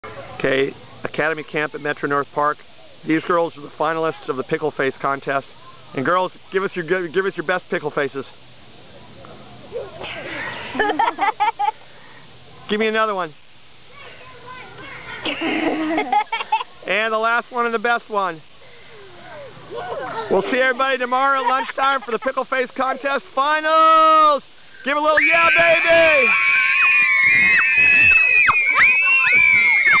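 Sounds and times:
girls chattering and laughing: 0:08.8 - 0:12.7, 0:13.8 - 0:17.0, 0:18.5 - 0:23.4
girls screaming and shouting: 0:25.1 - 0:30.0.

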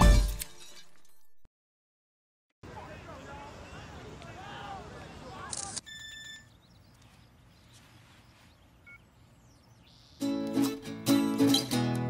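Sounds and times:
camera shutter sound: 0:05.5 - 0:06.0.

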